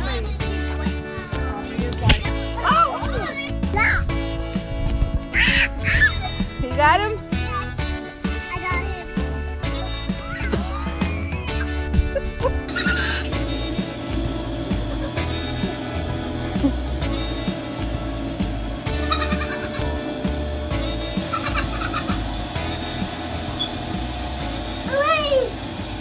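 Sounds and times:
background music with steady beat: 0.0 - 26.0
goat bleating: 12.6 - 13.3, 14.9 - 15.2, 18.9 - 19.9, 21.3 - 22.2.

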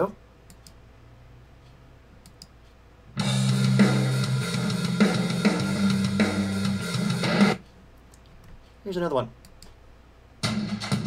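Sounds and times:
low room hum: 0.0 - 11.0
faint mouse clicks: 0.5 - 0.8, 1.6 - 2.8, 9.4 - 9.8.

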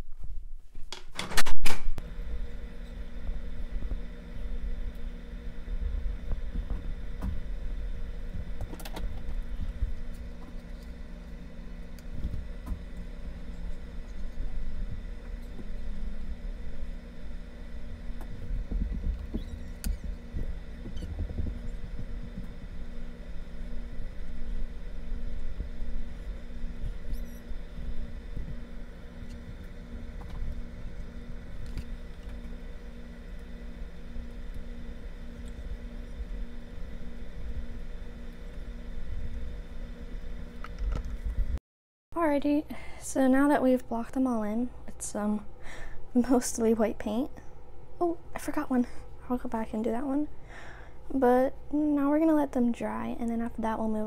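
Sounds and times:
low room rumble and hum: 0.0 - 54.0.

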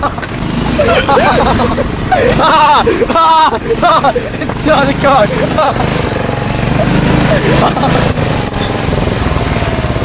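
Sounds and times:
young people laughing and exclaiming: 0.0 - 8.2
moving car noise: 0.0 - 10.0.

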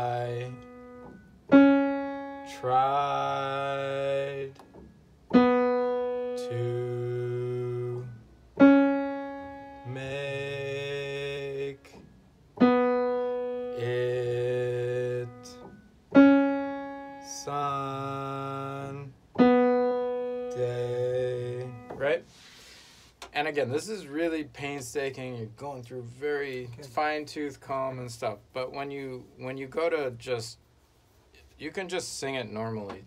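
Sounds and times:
man singing held syllable: 0.0 - 0.8, 2.4 - 4.6, 6.1 - 8.2, 9.5 - 12.0, 13.4 - 15.7, 17.1 - 22.4
single piano notes: 0.0 - 22.3.

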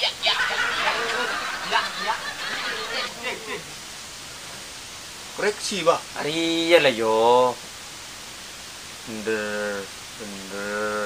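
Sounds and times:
voices: 0.0 - 4.0, 9.1 - 11.0
steady background hiss: 0.0 - 11.0.

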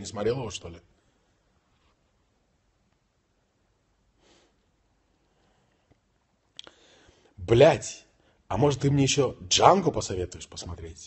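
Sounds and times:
man sniffing: 4.2 - 4.6.

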